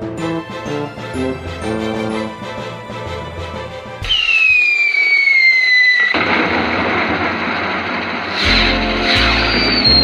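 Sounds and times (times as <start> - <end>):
firework whistle falling in pitch: 4.0 - 6.3, 8.4 - 10.0
firework rushing burst: 4.0 - 10.0.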